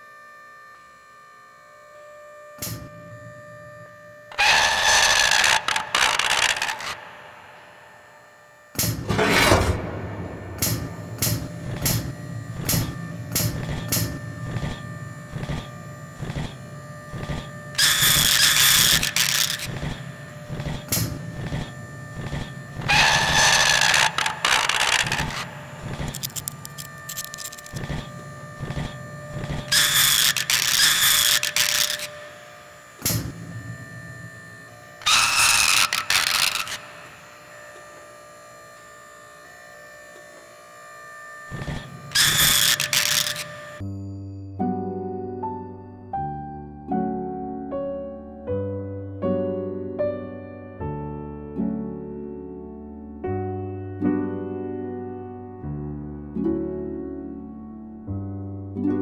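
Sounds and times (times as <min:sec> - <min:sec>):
sharp mechanical clicks: 0:04.3 - 0:07.1, 0:17.2 - 0:32.3, 0:35.0 - 0:37.1, 0:41.6 - 0:43.8.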